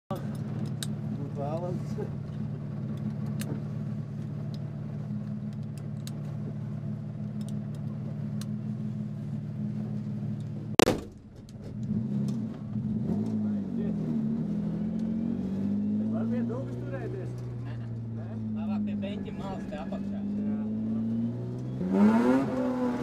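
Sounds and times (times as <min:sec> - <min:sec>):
car engine idling and revving: 0:00.1 - 0:23.0
car door slamming: 0:10.8 - 0:11.8.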